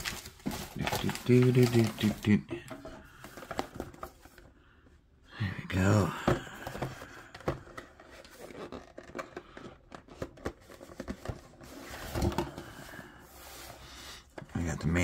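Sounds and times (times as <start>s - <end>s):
paper rustling: 0.0s - 2.4s
cardboard box being opened: 6.8s - 12.5s.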